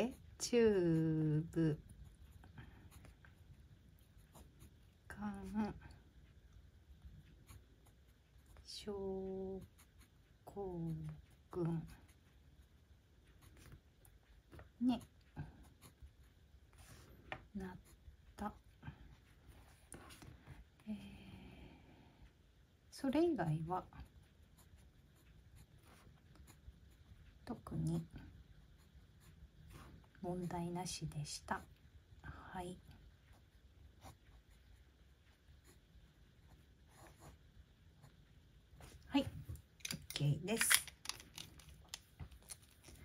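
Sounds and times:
pen nib scratching on paper: 0.0s - 5.8s, 7.3s - 8.8s, 9.4s - 12.2s, 13.3s - 13.8s, 14.5s - 18.6s, 23.8s - 27.1s, 36.5s - 37.4s
pen scratching on paper: 4.1s - 4.8s, 13.4s - 13.8s, 36.9s - 37.4s.

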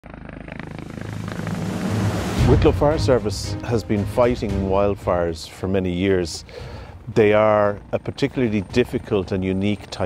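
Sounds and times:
helicopter engine hum: 0.0s - 10.0s
helicopter rotor beating: 0.0s - 10.0s.

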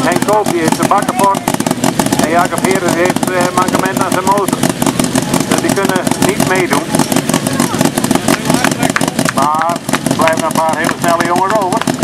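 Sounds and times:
voice over loudspeaker: 0.0s - 1.6s, 2.2s - 4.6s, 7.5s - 12.0s
car engine at low revs: 0.0s - 12.0s.

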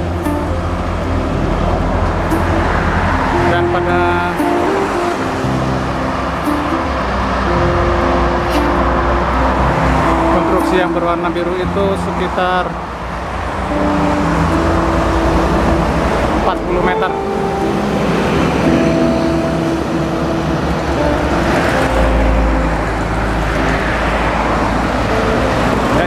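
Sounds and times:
cars and trucks passing: 0.0s - 26.0s
heavy low rumble: 0.0s - 26.0s.

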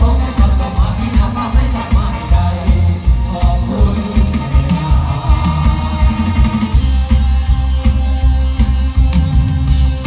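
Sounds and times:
heavy kick drum and bass: 0.0s - 10.0s
live band playing: 0.0s - 10.0s.

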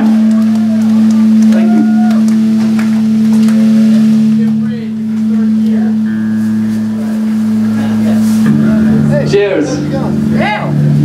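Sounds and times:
drums and band playing: 0.0s - 11.0s
guitar feedback drone: 0.0s - 11.0s.

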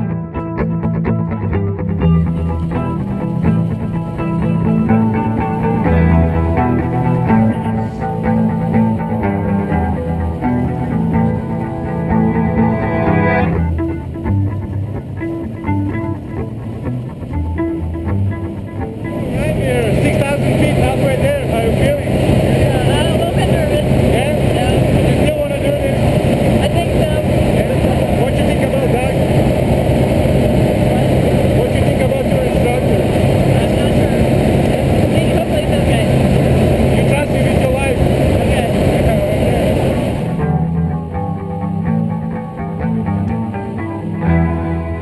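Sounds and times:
plane engine drone: 1.4s - 45.0s
voices talking: 4.6s - 10.0s, 19.2s - 40.4s.

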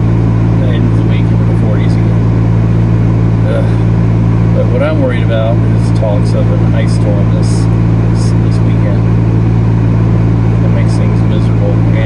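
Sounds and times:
car engine idling: 0.0s - 12.0s
person saying uh: 3.4s - 3.9s.

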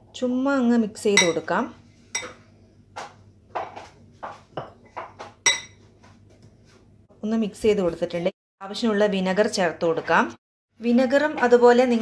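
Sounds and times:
metal spoon clinking glass bowl: 1.2s - 1.4s, 2.2s - 2.4s, 5.5s - 5.8s.

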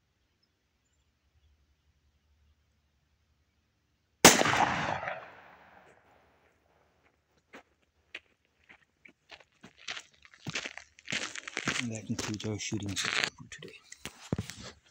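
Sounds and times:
revolver gunshot: 4.2s - 5.9s
faint clicks and crunches: 9.0s - 14.9s.

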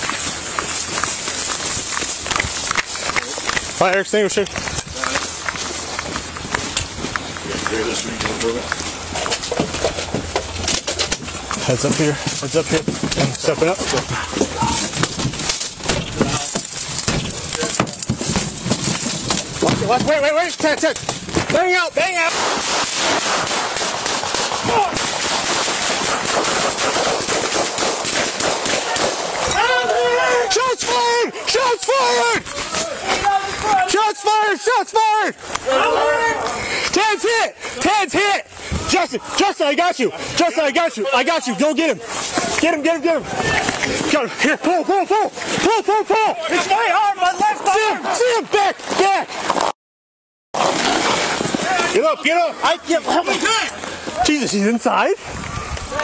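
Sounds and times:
hurried footsteps on grass: 0.0s - 22.7s
gear rustling and knocking: 0.0s - 29.6s
man shouting: 14.0s - 14.9s, 29.5s - 38.2s
steady hiss: 21.6s - 29.5s
rapid gunfire: 22.2s - 29.5s.

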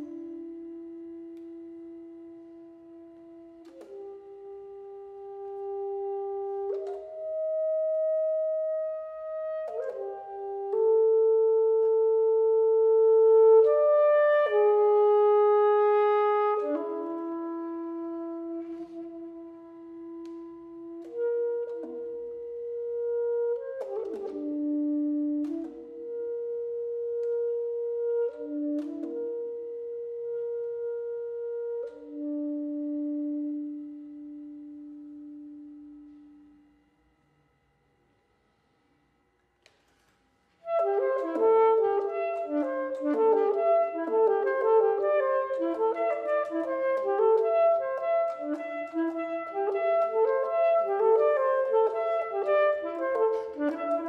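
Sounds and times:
solo saxophone: 0.0s - 37.0s, 39.6s - 54.0s.

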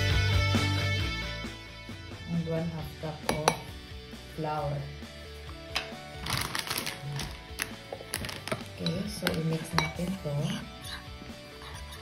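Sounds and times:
background music: 0.0s - 12.0s
dry crackling noise: 6.2s - 8.5s.

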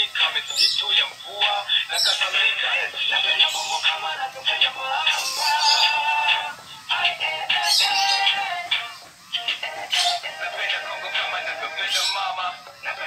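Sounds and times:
toy playing tinny song: 0.0s - 13.0s.

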